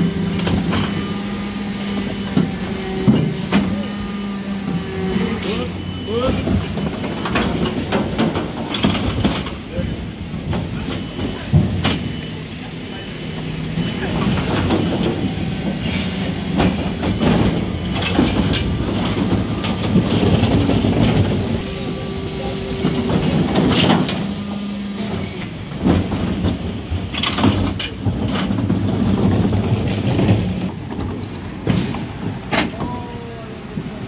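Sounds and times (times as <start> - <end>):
hydraulic lift and compactor hum: 0.0 - 34.0
wheeled bin knocking and clattering: 25.8 - 32.8.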